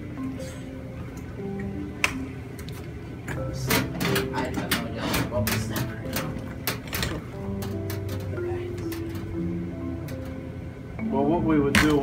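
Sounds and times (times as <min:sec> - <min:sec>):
plucked melody: 0:03.3 - 0:12.0.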